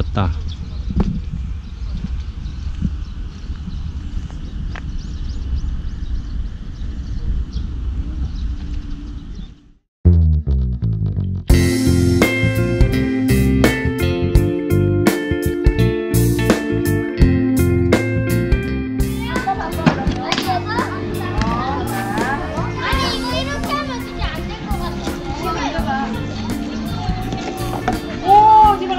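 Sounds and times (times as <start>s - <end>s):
small birds chirping: 0.0s - 9.8s, 23.1s - 28.9s
wind rumble on microphone: 0.0s - 9.8s
guitar music: 10.1s - 28.9s
children talking and calling out: 19.0s - 28.9s.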